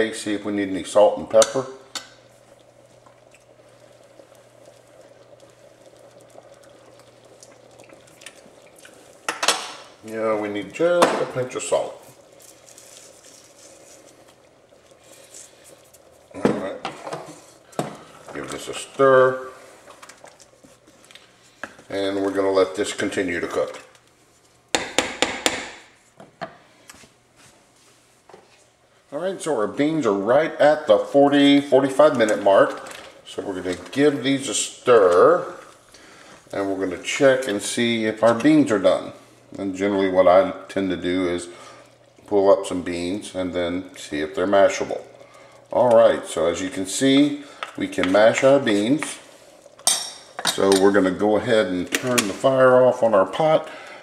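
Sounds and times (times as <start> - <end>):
pot bubbling: 0.0 - 54.0.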